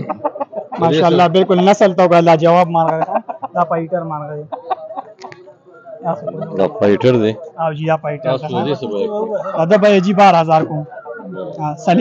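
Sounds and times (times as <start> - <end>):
man's voice: 11.5 - 12.0.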